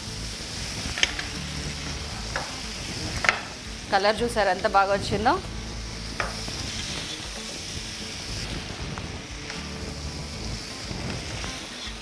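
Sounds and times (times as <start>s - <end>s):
meat sizzling in a pot: 0.0s - 12.0s.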